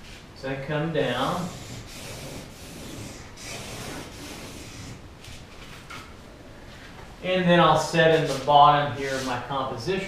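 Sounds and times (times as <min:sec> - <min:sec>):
marker scratching on paper: 0:01.2 - 0:05.0.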